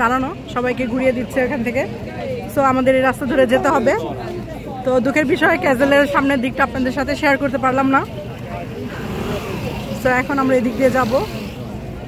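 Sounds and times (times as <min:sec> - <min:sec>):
street crowd murmur: 0:00.0 - 0:12.0.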